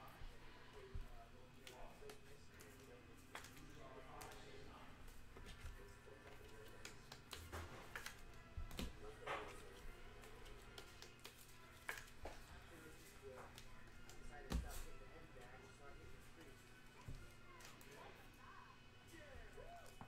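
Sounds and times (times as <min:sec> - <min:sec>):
cards and plastic holders handled: 0:00.6 - 0:18.4.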